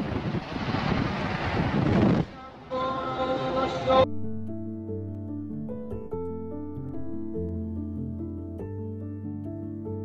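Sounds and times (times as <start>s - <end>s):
wind buffeting microphone: 0.0s - 2.4s
truck road and engine noise: 0.0s - 4.1s.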